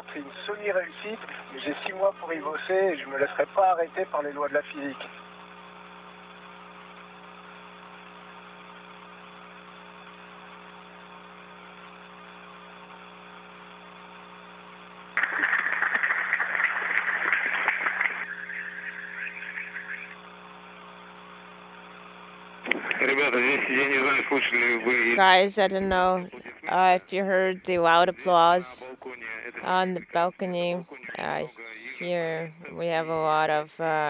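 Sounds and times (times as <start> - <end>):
man speaking: 0.0 - 5.1, 22.7 - 26.9
steady hum and hiss: 0.0 - 34.0
audience applause: 15.2 - 19.9.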